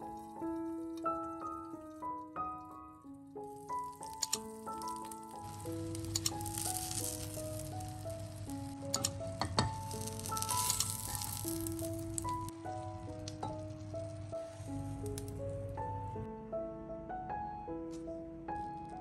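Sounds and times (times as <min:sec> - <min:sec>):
light piano music: 0:00.0 - 0:19.0
oil sizzling in frying pan: 0:03.4 - 0:15.3
utensils clicking against pan: 0:03.6 - 0:12.5.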